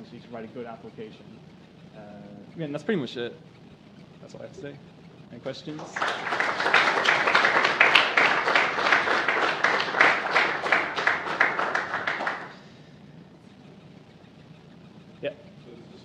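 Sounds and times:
audience applauding: 0:05.7 - 0:12.6.

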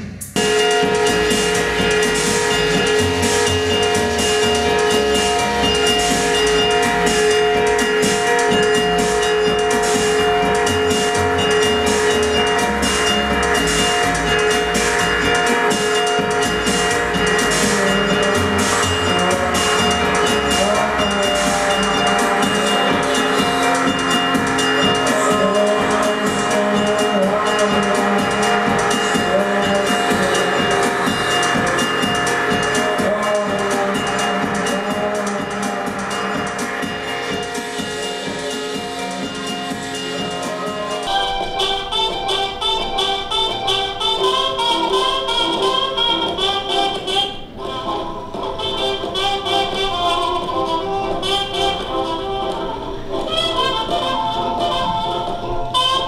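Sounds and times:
music with held tones and pulsing: 0:00.0 - 0:56.0.

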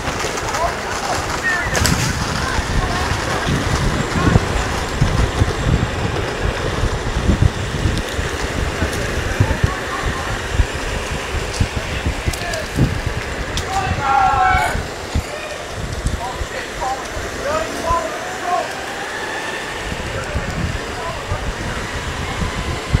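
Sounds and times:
skateboard wheels rumbling on pavement: 0:00.0 - 0:23.0
wind buffeting microphone: 0:00.0 - 0:23.0.

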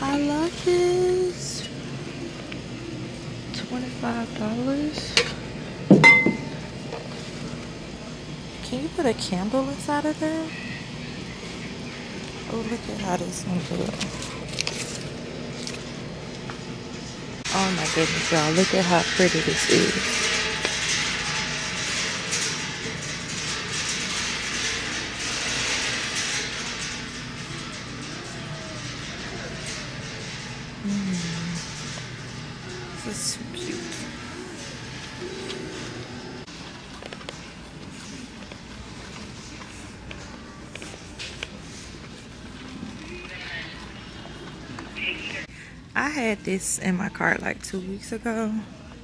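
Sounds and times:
glass vase clinking: 0:06.0 - 0:06.6
shopping cart rattling: 0:17.5 - 0:44.6.

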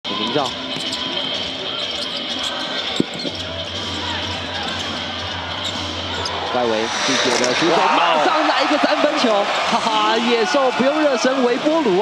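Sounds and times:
crowd noise: 0:00.1 - 0:12.0.

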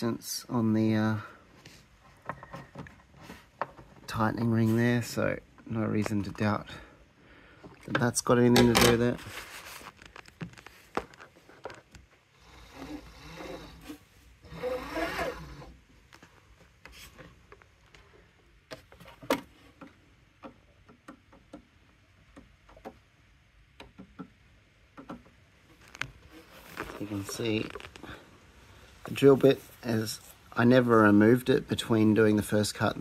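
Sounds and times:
handling clicks and rubbing: 0:07.9 - 0:12.2, 0:25.0 - 0:28.2
scraping: 0:25.7 - 0:28.3.

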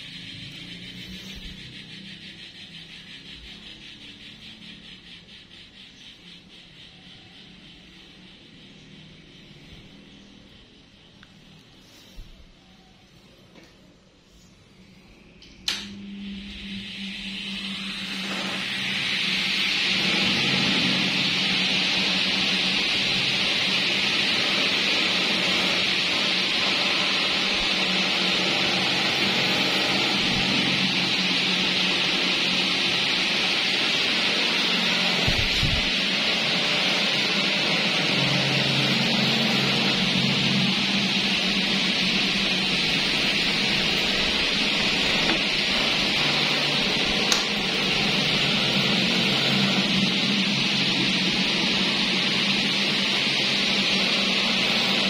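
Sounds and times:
electric fans rushing air: 0:00.0 - 0:55.0
low motor hum: 0:14.7 - 0:55.0.

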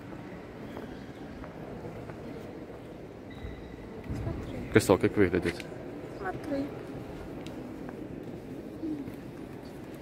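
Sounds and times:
murmur of visitors: 0:00.0 - 0:10.0.

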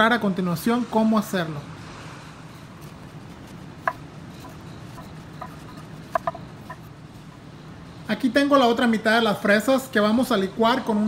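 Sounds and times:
knife tapping cutting board: 0:03.9 - 0:06.8.

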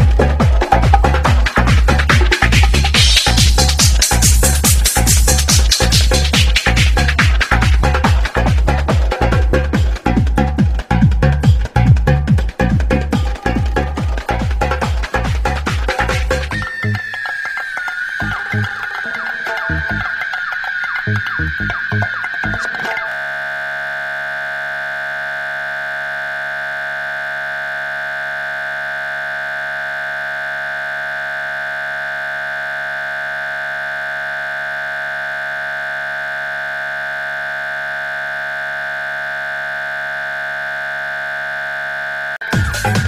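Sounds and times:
electronic dance music: 0:00.0 - 0:43.0
steady electronic tone: 0:18.1 - 0:43.0.

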